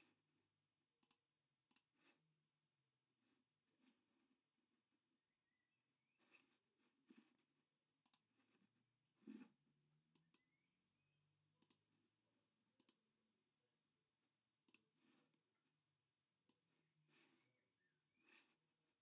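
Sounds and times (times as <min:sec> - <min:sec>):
computer mouse clicks: 0:01.0 - 0:02.2, 0:08.0 - 0:08.4, 0:09.2 - 0:10.7, 0:11.5 - 0:11.9, 0:12.7 - 0:13.1, 0:14.6 - 0:15.0, 0:16.4 - 0:16.6.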